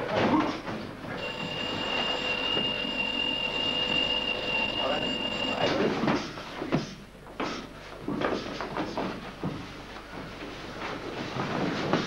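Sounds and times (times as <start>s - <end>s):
high-pitched timer buzzer: 1.2s - 5.8s.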